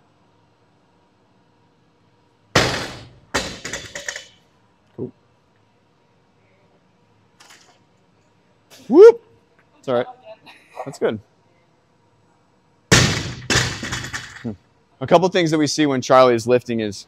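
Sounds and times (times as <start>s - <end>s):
barbell hitting rubber floor: 2.6s - 4.3s, 12.9s - 14.4s.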